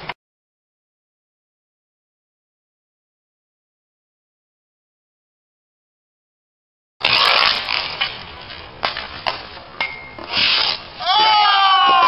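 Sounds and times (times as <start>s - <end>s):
hockey sticks scraping on asphalt: 7.0s - 12.0s.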